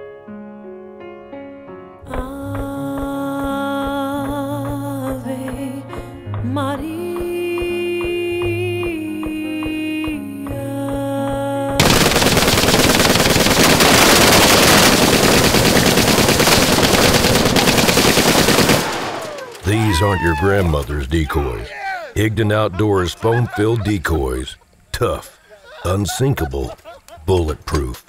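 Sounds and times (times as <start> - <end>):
automatic gunfire: 11.8 - 19.7.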